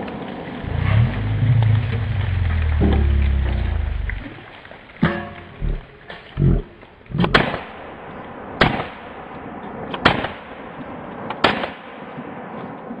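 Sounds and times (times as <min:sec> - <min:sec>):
dull low thumps: 0:00.6 - 0:04.4, 0:05.4 - 0:07.6
gunshots sharp cracks: 0:07.2 - 0:09.2, 0:09.9 - 0:10.7, 0:11.3 - 0:12.2.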